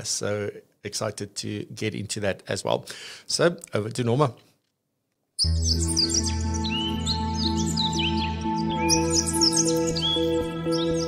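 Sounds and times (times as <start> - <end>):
birds chirping: 5.4 - 11.0
soft music of held notes: 5.4 - 11.0.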